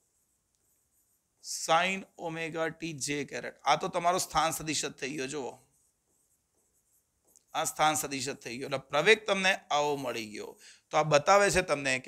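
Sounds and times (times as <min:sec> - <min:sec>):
man speaking: 0:01.4 - 0:05.7, 0:07.5 - 0:12.0.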